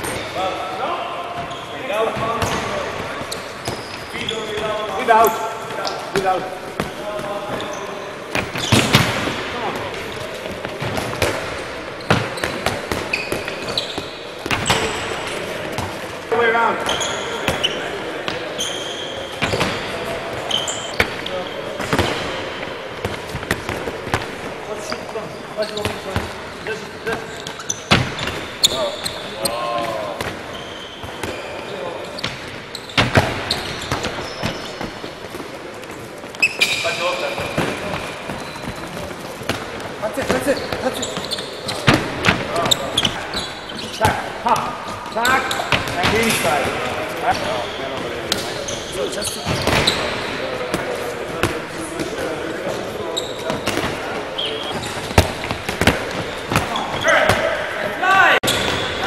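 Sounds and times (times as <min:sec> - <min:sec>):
players chattering: 0:00.0 - 0:59.0
balls bouncing on wooden floor: 0:06.1 - 0:26.4, 0:27.1 - 0:31.4, 0:49.5 - 0:57.6.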